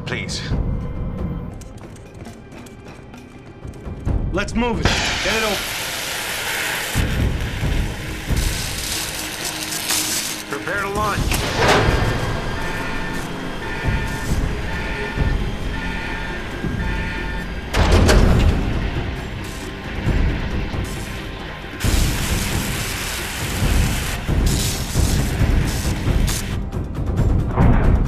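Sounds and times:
loud rushing noise: 0:04.8 - 0:26.6
alarm beeping: 0:07.0 - 0:26.4
deep rumble: 0:10.9 - 0:28.0.

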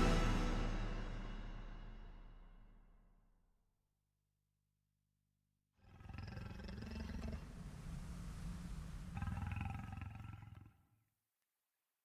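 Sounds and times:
rough creature roar: 0:05.8 - 0:10.8.

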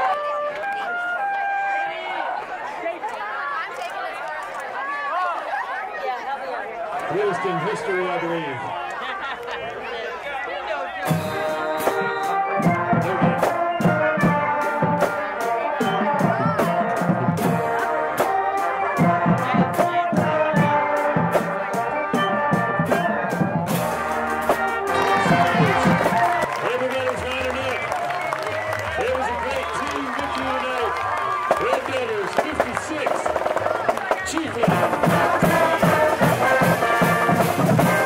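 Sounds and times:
brass band horns: 0:11.0 - 0:38.0
steady drum beat: 0:11.1 - 0:38.0.

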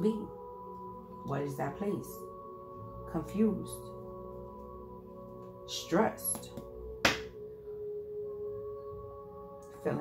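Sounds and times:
sharp slap: 0:06.4 - 0:07.4.

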